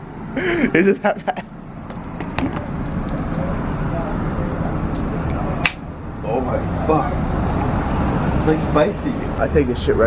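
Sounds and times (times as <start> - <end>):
low traffic hum: 0.0 - 10.0.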